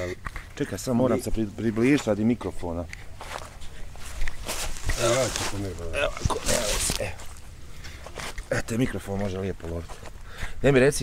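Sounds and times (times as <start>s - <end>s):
footsteps: 0.2s - 10.3s
rustling: 2.8s - 10.3s.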